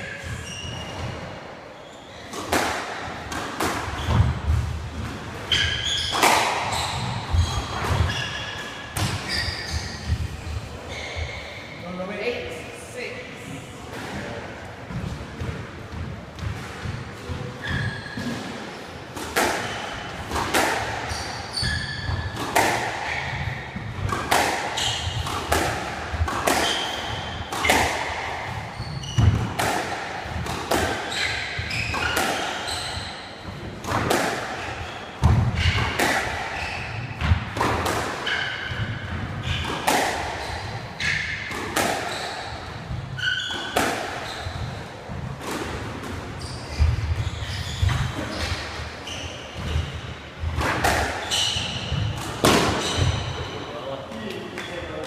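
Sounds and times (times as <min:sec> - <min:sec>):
shoes squeaking on wooden floor: 0:05.5 - 0:11.6, 0:17.3 - 0:18.8, 0:21.0 - 0:22.4, 0:28.5 - 0:29.5, 0:31.0 - 0:33.6, 0:42.0 - 0:44.8, 0:46.3 - 0:50.6.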